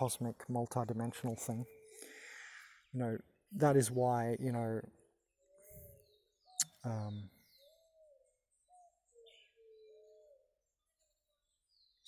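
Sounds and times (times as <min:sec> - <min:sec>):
distant whistled bird calls: 0:00.0 - 0:12.0.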